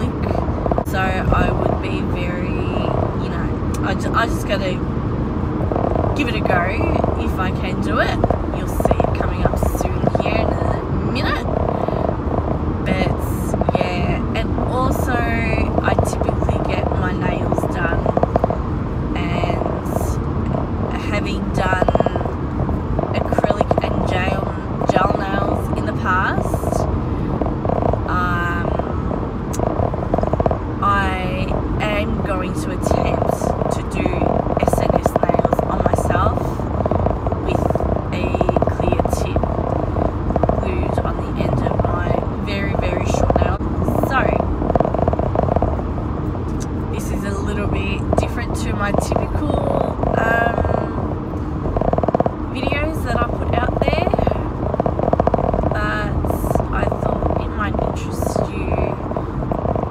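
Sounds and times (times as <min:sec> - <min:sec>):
woman talking: 0:00.0 - 0:04.9, 0:06.2 - 0:12.1, 0:12.8 - 0:18.2, 0:19.1 - 0:22.4, 0:23.1 - 0:26.9, 0:28.1 - 0:29.0, 0:30.8 - 0:36.6, 0:37.4 - 0:39.5, 0:40.6 - 0:44.6, 0:46.6 - 0:51.1, 0:52.5 - 0:54.6, 0:55.7 - 0:59.1
car road and engine noise: 0:00.0 - 0:59.9.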